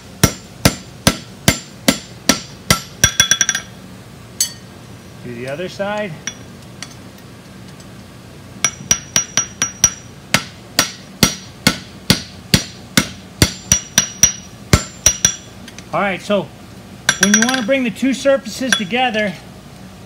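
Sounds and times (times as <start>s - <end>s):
hammer striking hot metal: 0.2s - 3.8s, 4.4s - 4.7s, 8.6s - 15.5s, 17.1s - 17.8s, 18.7s - 19.0s
anvil ringing: 4.4s - 4.7s, 8.6s - 10.1s, 10.8s - 15.5s, 17.1s - 17.8s, 18.7s - 19.0s.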